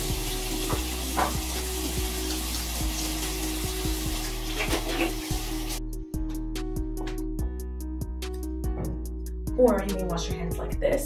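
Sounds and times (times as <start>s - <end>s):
faucet running into sink: 0.0s - 5.8s.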